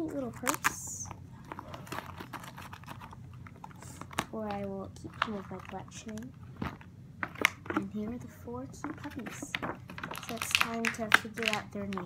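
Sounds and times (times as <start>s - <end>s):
person speaking: 0.0s - 1.8s, 3.8s - 6.4s, 7.6s - 12.0s
plastic clicks and crinkles: 0.1s - 12.0s.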